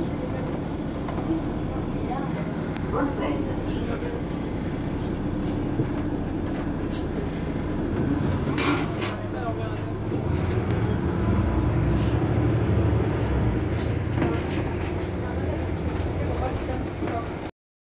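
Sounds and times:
bus engine rumbling: 0.0s - 17.5s.

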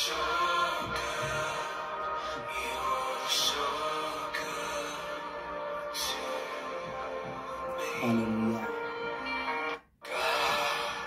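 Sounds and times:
slow music of held chords: 0.0s - 11.0s.

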